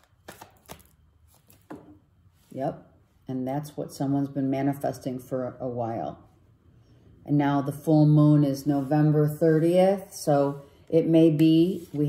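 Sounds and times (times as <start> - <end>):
cards being shuffled: 0.0 - 2.0.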